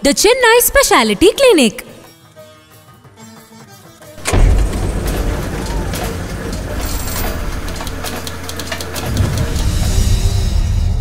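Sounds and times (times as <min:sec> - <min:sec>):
deep bass: 0:04.2 - 0:08.2
sharp clicking hits: 0:04.2 - 0:11.0.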